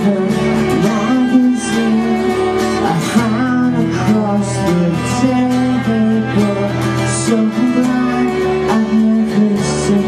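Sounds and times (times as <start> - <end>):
strummed acoustic guitars: 0.0 - 10.0.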